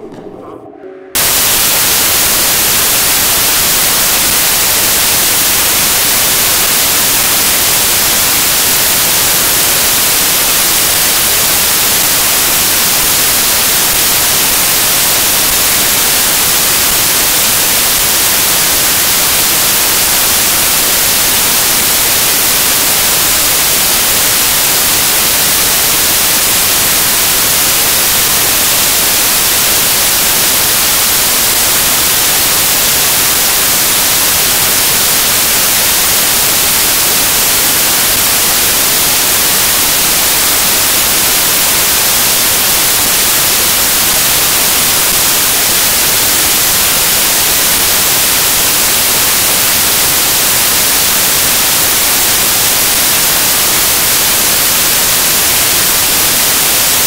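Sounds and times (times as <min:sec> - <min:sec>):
loud static hiss: 0:01.0 - 0:57.0.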